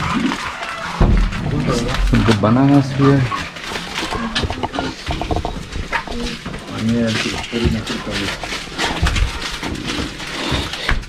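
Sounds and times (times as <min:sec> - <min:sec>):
people talking: 0:01.4 - 0:03.4, 0:06.1 - 0:09.0
items being handled knocks: 0:03.6 - 0:11.0.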